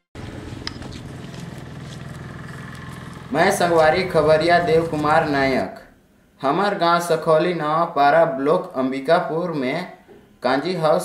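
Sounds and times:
motor engine humming: 0.1 - 5.7
outdoor background noise: 0.2 - 6.4.

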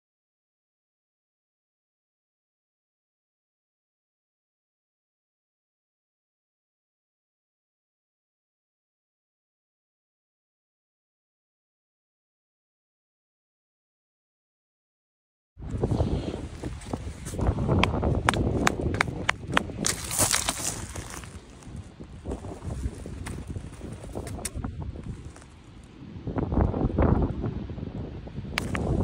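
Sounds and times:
wind rumbling on microphone: 15.6 - 29.0.

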